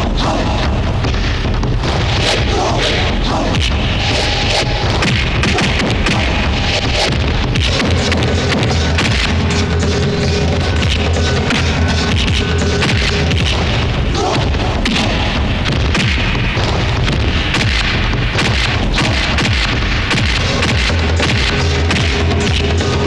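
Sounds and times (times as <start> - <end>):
action film score with driving beat: 0.0 - 23.0.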